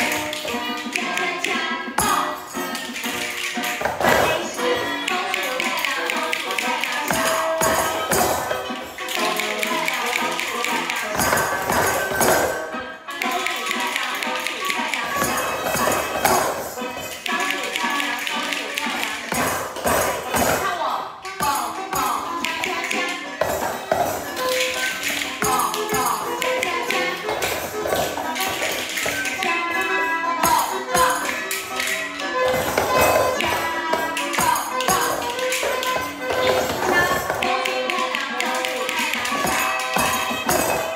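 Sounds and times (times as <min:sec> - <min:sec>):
children tapping hand percussion: 0:00.0 - 0:40.9
music track playing: 0:00.0 - 0:40.9
jingle bells shaking: 0:02.0 - 0:20.7, 0:21.4 - 0:40.9
hand drums tapping: 0:13.2 - 0:20.7.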